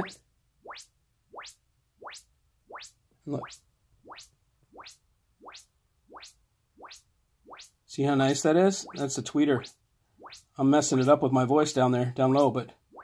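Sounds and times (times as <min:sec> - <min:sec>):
rising sine sweep chirps: 0:08.8 - 0:10.5.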